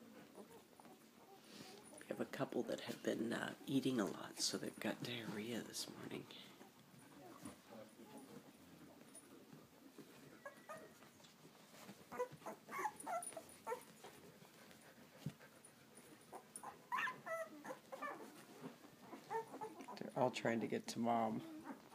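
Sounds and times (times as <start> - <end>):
puppies whimpering and squeaking: 10.0 - 14.8, 16.0 - 20.0, 21.4 - 21.9.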